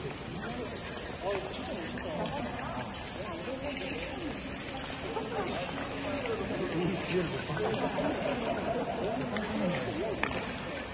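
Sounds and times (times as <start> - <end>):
crowd chatter in large hall: 0.0 - 10.9.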